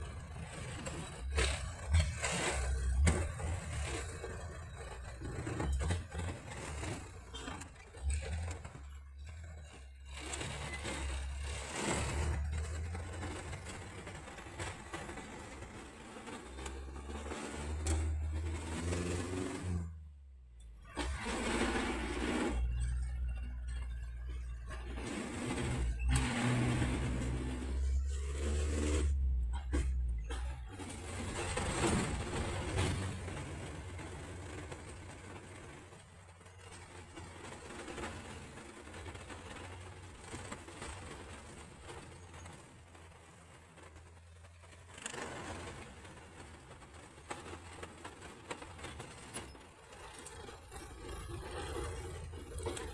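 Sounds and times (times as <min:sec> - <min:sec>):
van engine while driving: 0:00.0 - 0:52.9.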